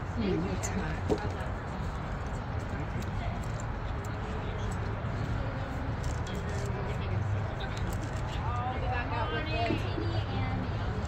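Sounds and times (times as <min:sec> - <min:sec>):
indistinct background conversation: 0:00.1 - 0:11.0.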